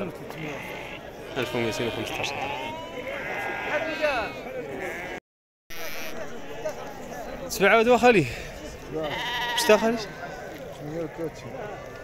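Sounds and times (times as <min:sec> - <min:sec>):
men's voices: 0:00.0 - 0:04.9, 0:06.2 - 0:12.0
sheep bleating: 0:00.3 - 0:05.2, 0:09.0 - 0:10.3.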